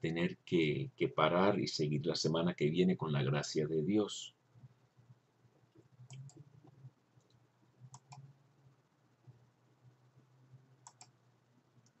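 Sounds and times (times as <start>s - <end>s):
low steady hum: 0.0s - 12.0s
faint computer mouse clicks: 7.2s - 8.3s, 10.8s - 11.2s.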